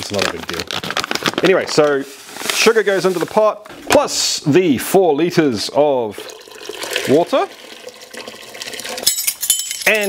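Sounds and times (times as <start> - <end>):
water pouring into a pot: 5.8 - 9.2.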